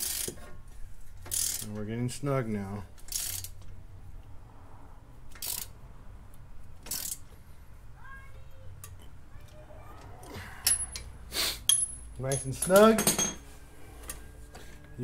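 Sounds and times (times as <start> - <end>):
socket ratchet wrench clicking: 0.0 - 0.4, 1.2 - 1.7, 3.0 - 3.7, 5.3 - 5.8, 6.8 - 7.3.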